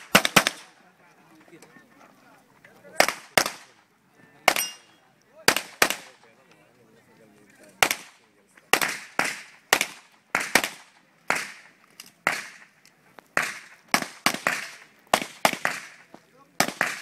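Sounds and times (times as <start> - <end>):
handgun shots echoing: 4.5 - 4.9.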